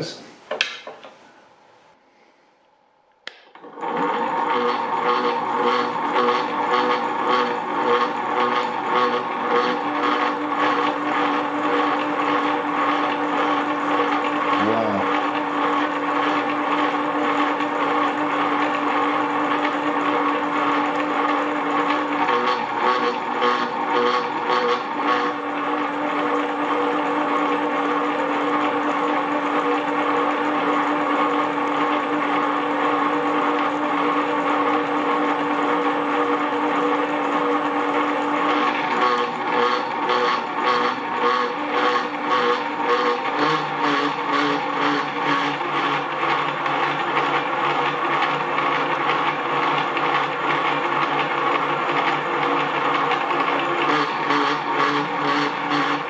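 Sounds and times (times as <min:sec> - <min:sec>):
pillar drill boring into steel: 0:37.4 - 0:56.0.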